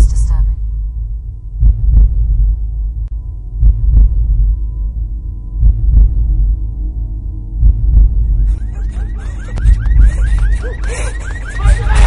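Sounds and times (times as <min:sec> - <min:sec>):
heartbeat thumps: 0:00.0 - 0:06.7, 0:07.5 - 0:12.0
low steady drone: 0:00.0 - 0:12.0.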